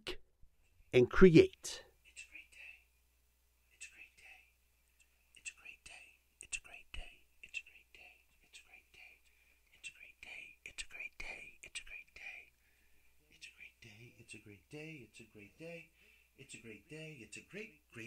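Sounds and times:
person whispering: 1.0 - 2.8, 3.8 - 4.5, 5.4 - 9.2, 9.8 - 12.5.

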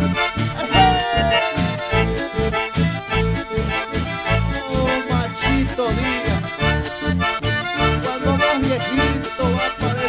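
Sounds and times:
dance band with accordion: 0.0 - 10.0
steady bass beat: 0.4 - 7.5.

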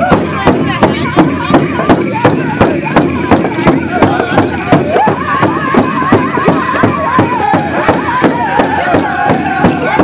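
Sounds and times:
big drum beating: 0.0 - 10.0
voices singing in unison: 3.8 - 10.0.

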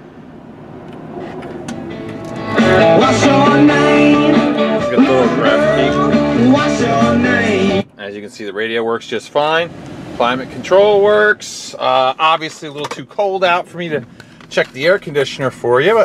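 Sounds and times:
song with singing on car radio: 2.0 - 7.9.

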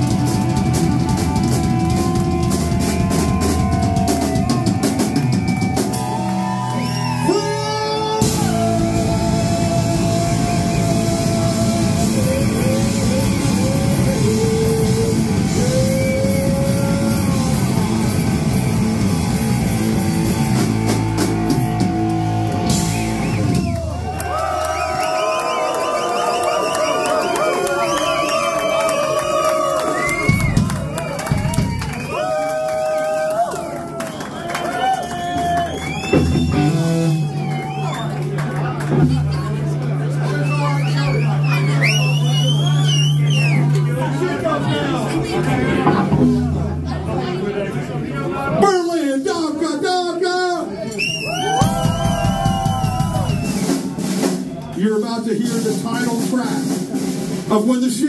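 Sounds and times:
live rock band playing: 0.0 - 25.0, 29.4 - 32.0, 35.3 - 47.4, 51.4 - 58.0
crowd shouting and cheering: 0.0 - 58.0.

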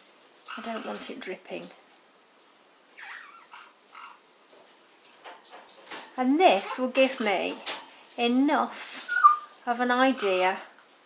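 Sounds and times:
parrot soft calls: 3.0 - 4.2.

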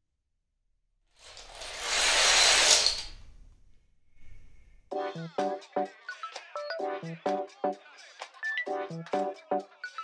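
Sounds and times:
dominoes clattering on wooden floor: 1.2 - 3.2.

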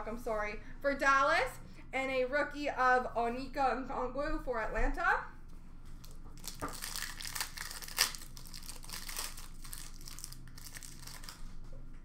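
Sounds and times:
foil wrapper crinkling: 5.9 - 11.6.

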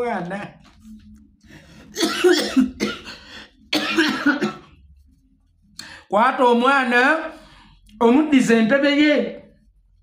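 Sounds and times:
man coughing: 2.0 - 4.7.

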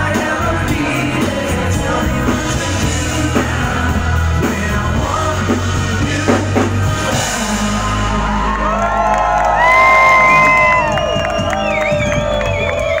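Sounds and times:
live pop band music: 0.0 - 13.0
crowd cheering and whooping: 7.3 - 13.0.

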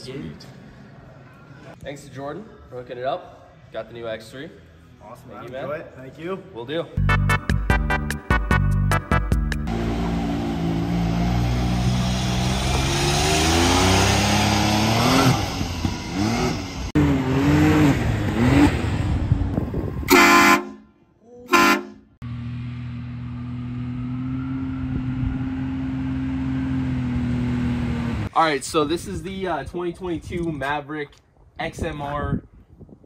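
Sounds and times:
engine running and revving: 9.6 - 19.8, 22.2 - 28.3
train horn blasts: 20.1 - 20.9, 21.5 - 22.1.

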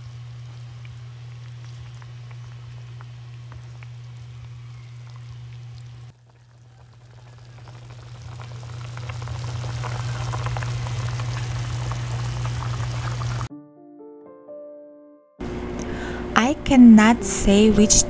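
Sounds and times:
steady low hum: 0.0 - 6.1, 7.4 - 13.5, 15.4 - 18.0
soup bubbling in a pot: 0.0 - 13.5
piano music: 13.5 - 18.0.

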